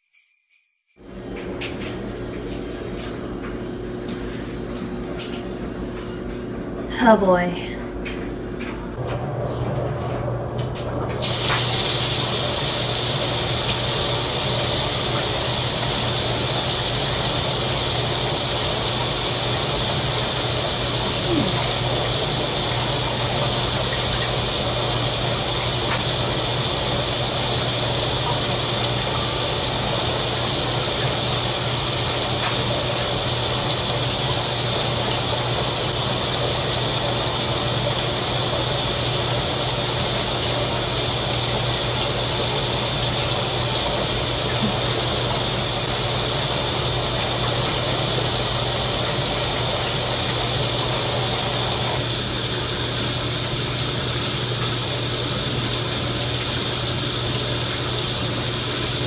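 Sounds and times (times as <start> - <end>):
tap water pouring into sink: 11.1 - 59.0.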